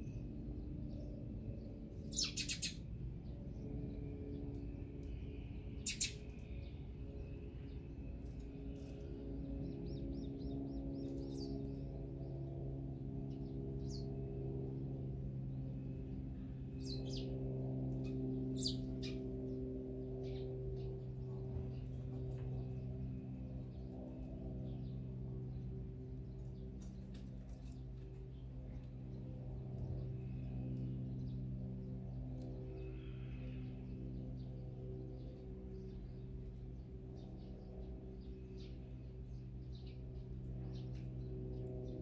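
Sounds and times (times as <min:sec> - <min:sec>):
low hum of held tones: 0:00.0 - 0:42.0
small songbirds chirping: 0:00.0 - 0:42.0.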